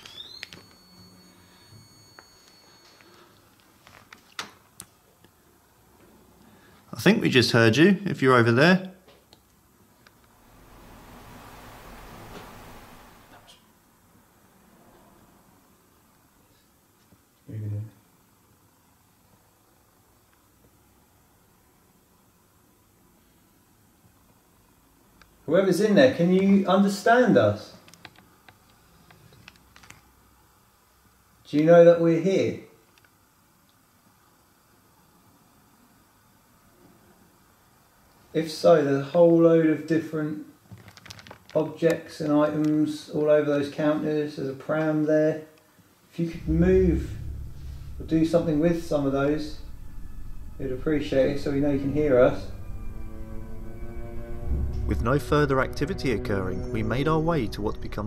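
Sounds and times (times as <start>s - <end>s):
high-pitched electronic tone: 46.4s - 58.0s.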